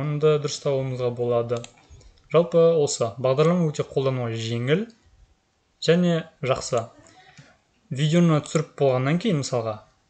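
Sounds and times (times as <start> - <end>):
man narrating: 0.0 - 1.7, 2.3 - 5.0, 5.8 - 6.9, 7.9 - 9.9.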